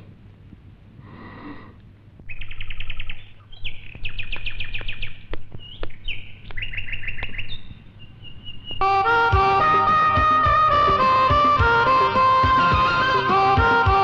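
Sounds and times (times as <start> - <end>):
low steady hum: 0.0 - 14.0
bird trilling chirps: 2.2 - 10.6.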